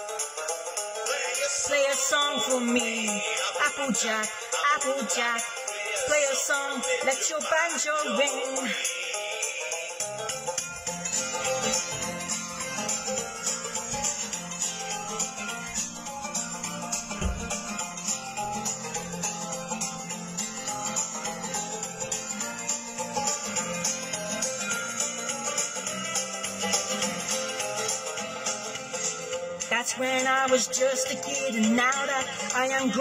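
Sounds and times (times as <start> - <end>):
guitar playing: 10.4 - 25.0
plucked banjo: 10.4 - 25.6.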